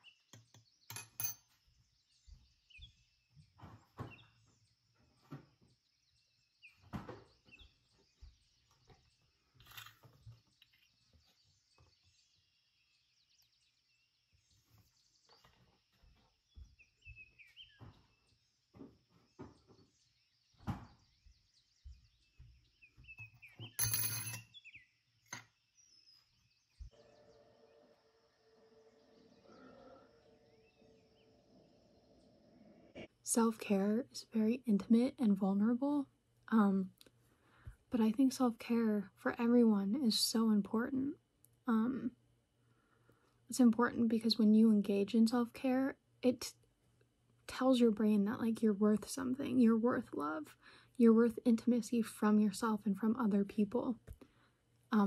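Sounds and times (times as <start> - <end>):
faint low hum: 25.8 - 55.0
faint high whine: 26.8 - 33.1.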